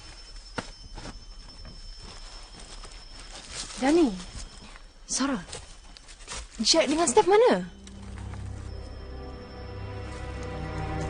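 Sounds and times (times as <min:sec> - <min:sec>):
rustles on leaf litter: 0:00.0 - 0:08.5.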